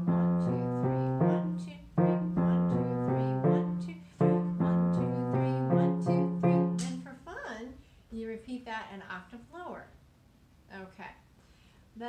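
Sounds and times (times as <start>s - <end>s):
grand piano exercise: 0.0s - 7.1s.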